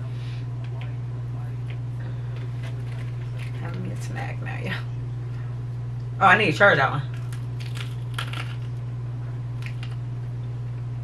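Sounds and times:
steady low hum: 0:00.0 - 0:11.0
small objects clicking and crinkling: 0:07.2 - 0:08.7, 0:09.6 - 0:10.0.

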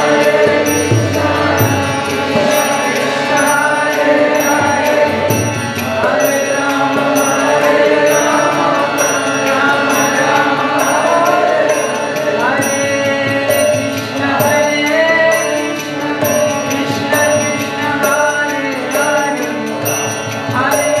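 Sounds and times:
group chanting: 0:00.0 - 0:19.9
hand cymbals striking: 0:00.0 - 0:21.0
harmonium: 0:00.0 - 0:21.0.

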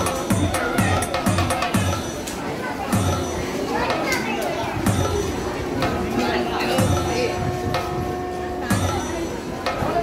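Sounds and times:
crowd chatter: 0:00.0 - 0:10.0
children's voices: 0:02.5 - 0:06.4.

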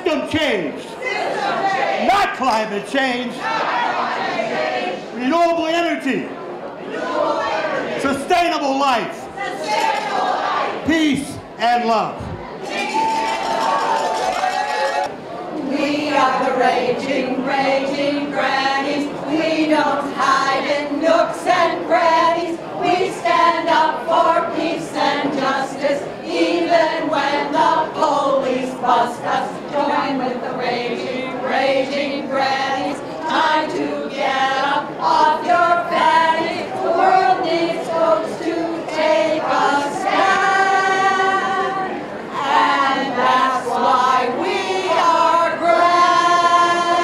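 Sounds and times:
women singing unaccompanied: 0:09.4 - 0:10.8, 0:15.5 - 0:47.0.

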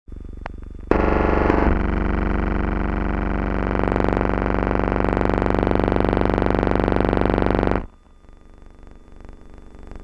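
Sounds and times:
distorted electrical buzz: 0:00.1 - 0:10.0
low hum: 0:00.1 - 0:10.0.

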